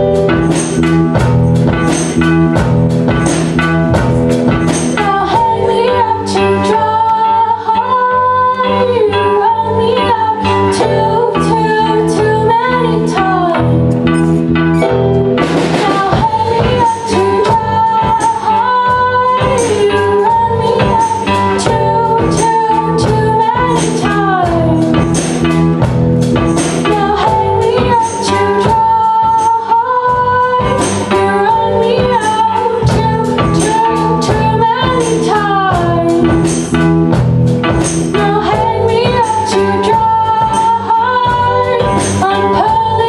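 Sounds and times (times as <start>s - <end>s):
drum kit with cymbal strokes: 0.0s - 7.6s, 9.5s - 43.0s
electric guitar: 0.0s - 43.0s.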